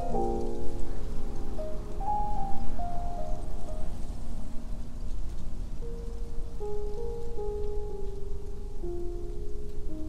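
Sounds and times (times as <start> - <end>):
piano chords and notes: 0.0 - 10.0
steady rushing noise: 0.0 - 10.0.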